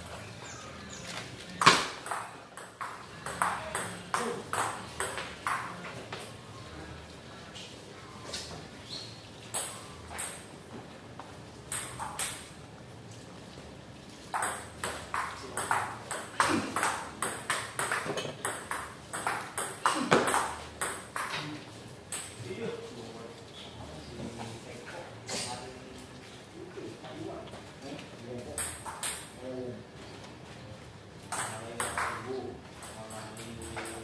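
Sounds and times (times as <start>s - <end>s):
table tennis ball bouncing: 1.6s - 5.9s, 9.5s - 10.5s, 11.7s - 12.5s, 14.3s - 21.4s, 28.6s - 29.4s, 31.3s - 34.0s.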